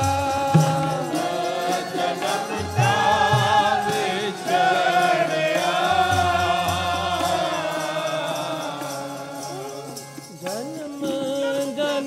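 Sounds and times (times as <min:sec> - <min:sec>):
harmonium chords: 0:00.0 - 0:12.0
men singing a hymn: 0:00.0 - 0:12.0
tabla: 0:00.0 - 0:12.0.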